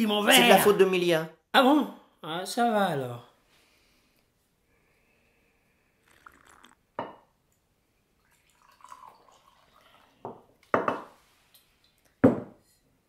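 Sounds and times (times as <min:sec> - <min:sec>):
wine pouring into glass: 0:06.0 - 0:07.2, 0:08.2 - 0:11.0.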